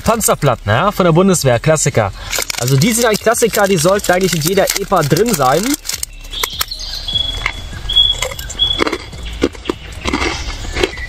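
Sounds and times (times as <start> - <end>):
crunching and chewing biscuit: 2.2 - 11.0.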